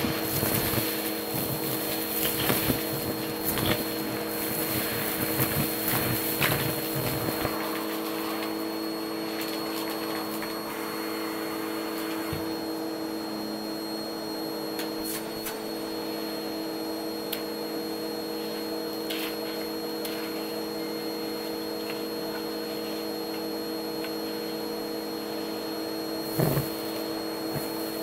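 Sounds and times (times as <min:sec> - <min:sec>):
debris crackling up nozzle: 0:00.0 - 0:08.1
vacuum cleaner motor: 0:00.0 - 0:28.0.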